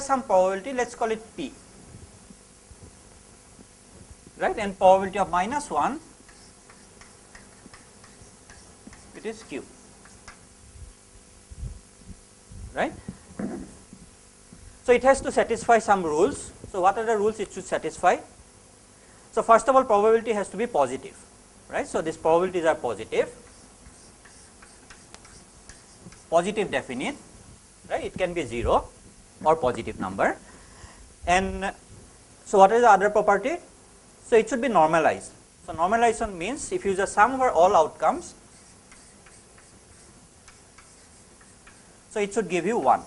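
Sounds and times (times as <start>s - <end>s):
low room hiss: 0.0s - 43.0s
chalk ticking on a blackboard: 5.7s - 10.5s, 23.1s - 26.7s, 38.1s - 43.0s.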